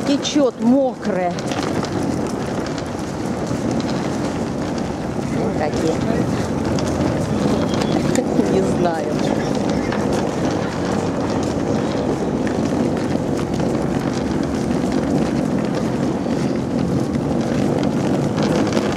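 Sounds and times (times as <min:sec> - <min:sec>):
suitcases rolling over concrete: 0:00.0 - 0:18.9.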